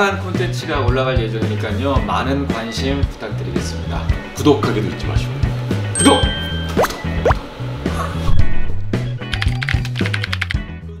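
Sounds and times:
background music with bass line: 0.0s - 11.0s
computer keyboard typing clicks: 9.3s - 10.6s.

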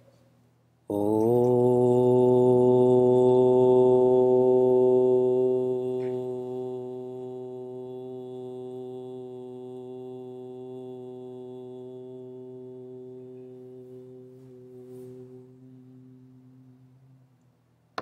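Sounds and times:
man chanting om: 0.8s - 17.4s.

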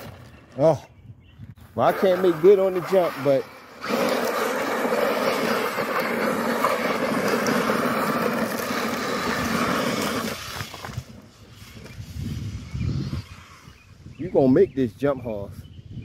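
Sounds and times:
toy truck motor whine: 1.9s - 10.7s
gravel spraying from tyres: 1.9s - 13.7s.

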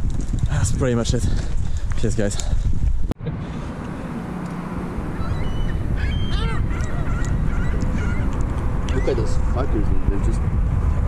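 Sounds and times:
gulls calling: 4.6s - 9.8s.

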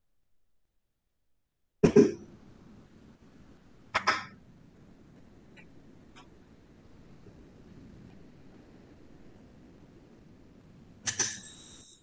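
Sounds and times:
short coughs: 1.8s - 2.2s, 11.1s - 11.7s
faint steady hiss: 1.8s - 12.0s.

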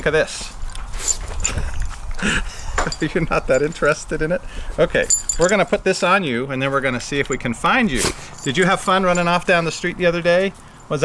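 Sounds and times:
rustling and handling noise: 0.3s - 11.0s.

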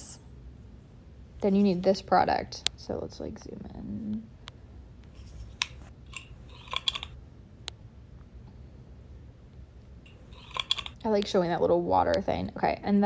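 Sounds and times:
low steady hum: 0.0s - 13.0s.

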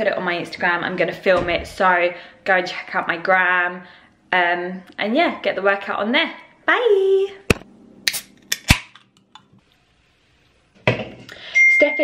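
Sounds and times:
can opening fizz: 8.0s - 9.0s.

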